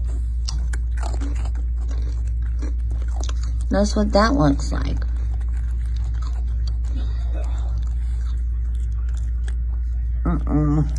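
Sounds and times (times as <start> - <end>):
loud steady low hum: 0.0 - 10.9
raccoon chewing and crunching food: 0.0 - 10.9.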